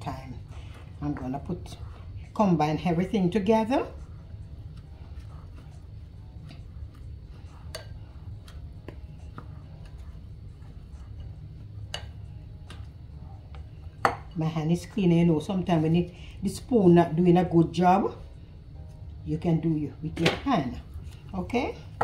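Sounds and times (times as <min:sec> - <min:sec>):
steady low hum: 0:00.0 - 0:22.0
wooden spoon stirring mix: 0:00.0 - 0:22.0.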